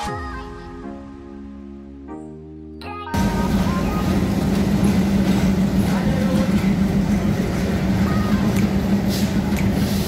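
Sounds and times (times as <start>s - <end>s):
diesel locomotive engine drone: 3.2s - 10.0s
train rumbling: 3.2s - 10.0s.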